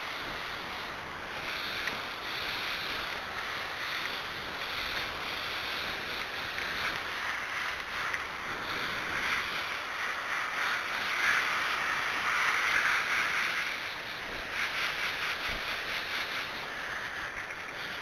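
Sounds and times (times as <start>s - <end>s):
hose spray hissing: 0.0s - 18.0s.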